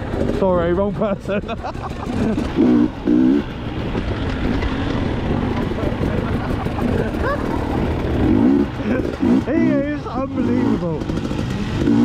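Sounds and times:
dirt bike engine running: 0:00.0 - 0:12.0
low riding noise rumble: 0:00.0 - 0:12.0.

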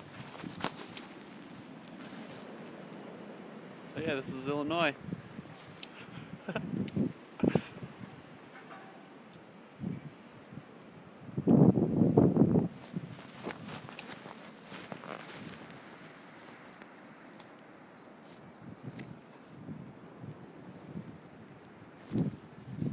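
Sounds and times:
phone microphone rustling: 0:00.0 - 0:02.7, 0:05.1 - 0:09.1, 0:12.5 - 0:19.6, 0:22.0 - 0:22.9
footsteps crunching in snow: 0:00.0 - 0:02.8, 0:05.2 - 0:06.0, 0:12.6 - 0:19.6, 0:22.0 - 0:22.9.

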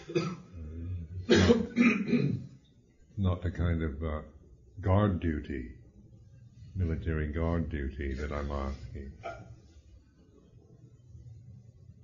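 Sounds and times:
man coughing: 0:00.0 - 0:00.6, 0:01.2 - 0:02.5
man clearing throat: 0:00.0 - 0:02.5.

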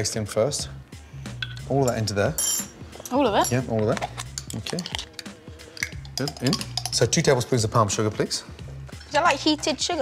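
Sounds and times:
background music: 0:00.0 - 0:10.0
spoon scraping glass jar: 0:01.4 - 0:07.4.

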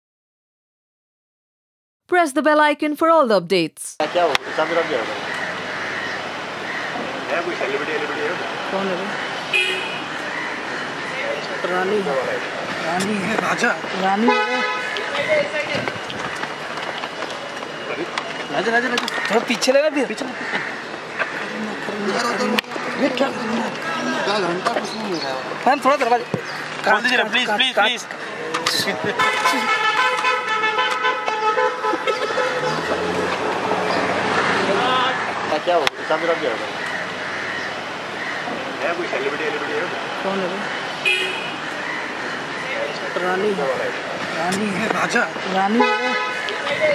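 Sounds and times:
car horn toot: 0:09.5 - 0:10.2, 0:14.2 - 0:15.8, 0:29.1 - 0:34.4, 0:41.0 - 0:41.7, 0:45.7 - 0:46.9
background voices: 0:32.4 - 0:36.0.

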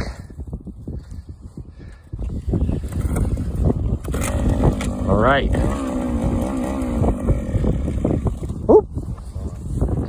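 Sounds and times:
small gasoline engine sputtering: 0:02.8 - 0:08.7.

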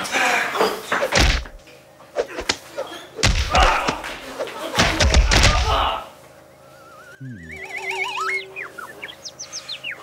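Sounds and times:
heavy thud of a blow: 0:01.1 - 0:01.6, 0:03.2 - 0:04.2, 0:04.8 - 0:05.9
voices: 0:07.1 - 0:08.6.

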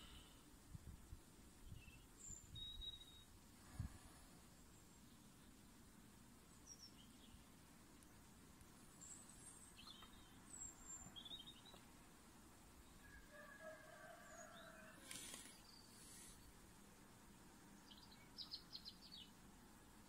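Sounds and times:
faint background hiss: 0:00.0 - 0:20.0.

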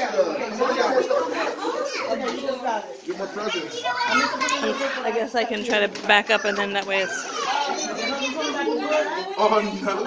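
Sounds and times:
children chattering: 0:00.0 - 0:10.0
children squealing: 0:06.3 - 0:08.5.

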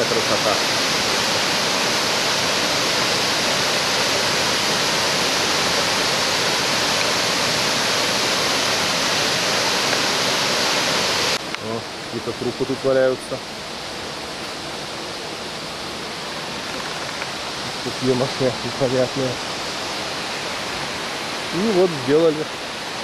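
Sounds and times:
rush of waterfall: 0:00.0 - 0:23.0.

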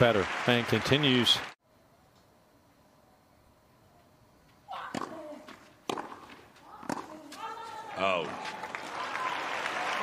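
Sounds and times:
tennis ball struck by rackets: 0:04.9 - 0:07.6.

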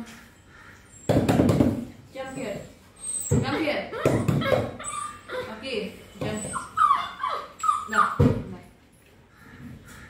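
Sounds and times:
puppy whining: 0:02.3 - 0:08.4.

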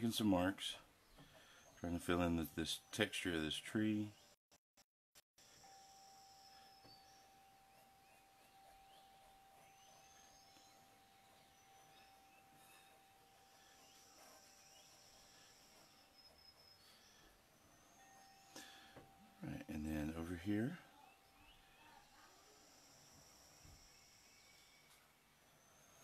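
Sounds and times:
faint steady tone: 0:05.4 - 0:26.0.

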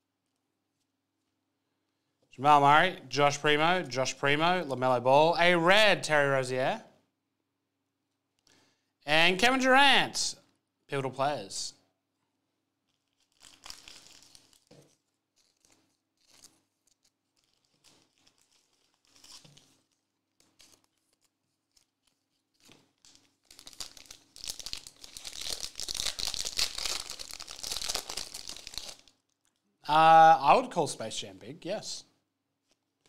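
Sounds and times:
wrapper tearing and crinkling: 0:12.8 - 0:29.6.

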